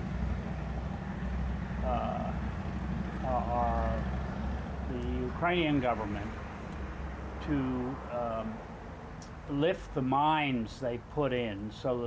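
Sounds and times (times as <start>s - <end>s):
man saying uh: 1.8s - 2.4s, 3.2s - 4.0s, 4.9s - 6.3s, 7.4s - 8.6s.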